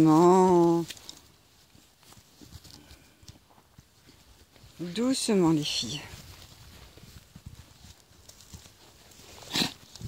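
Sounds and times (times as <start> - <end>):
hoof steps on dry ground: 0.0 - 10.0
rustling on dry ground: 0.0 - 10.0.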